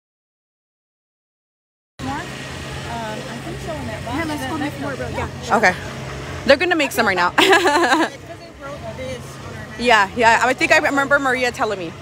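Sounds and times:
steady low hum: 2.0s - 12.0s.

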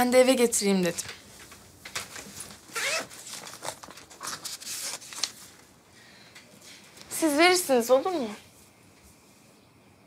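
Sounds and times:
envelope rasps and rustles: 2.2s - 5.4s.

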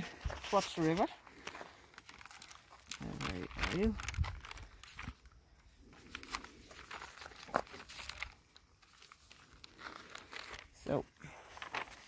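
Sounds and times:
crackling of dry scrub underfoot: 0.0s - 12.0s.

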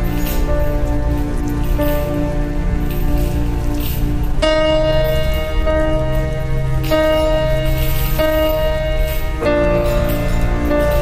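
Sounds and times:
slow instrumental music: 0.0s - 11.0s
steady crackling noise: 0.0s - 11.0s.

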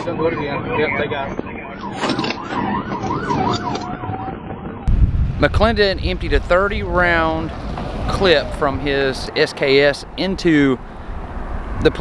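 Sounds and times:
police siren yelping: 0.0s - 4.8s.

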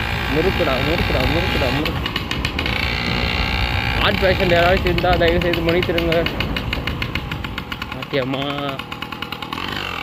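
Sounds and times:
road and wind noise: 0.0s - 10.0s
small motorbike engine running: 0.0s - 10.0s.

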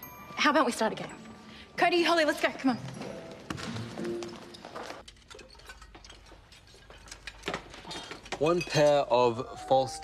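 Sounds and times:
background music: 0.0s - 5.0s, 8.6s - 10.0s.

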